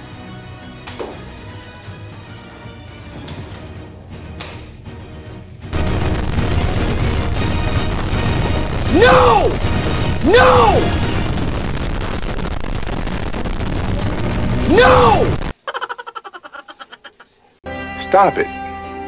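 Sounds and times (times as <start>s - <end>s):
quiet background music: 0.0s - 5.7s
distorted sound effect: 5.7s - 15.5s
sharp crack: 5.7s - 15.6s
person shouting: 8.8s - 9.6s, 10.2s - 11.0s, 14.6s - 15.5s.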